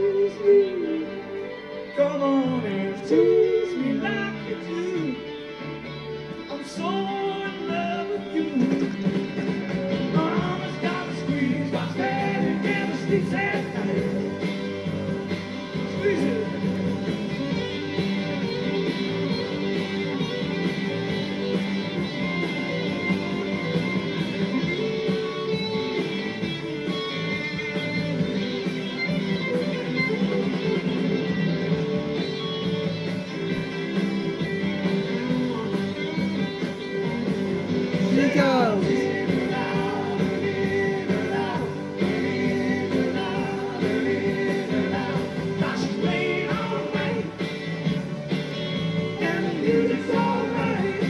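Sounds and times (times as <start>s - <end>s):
rock band playing: 0.0s - 51.0s.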